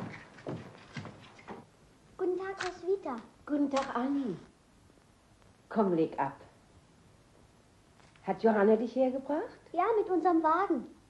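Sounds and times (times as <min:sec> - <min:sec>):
footsteps on hard floor: 0:00.0 - 0:01.7.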